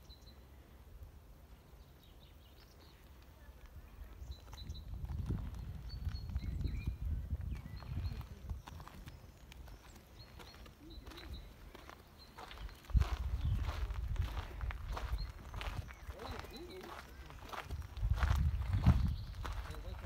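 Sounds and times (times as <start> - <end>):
low rumble on microphone: 3.8 - 9.2, 12.8 - 16.0, 17.4 - 20.0.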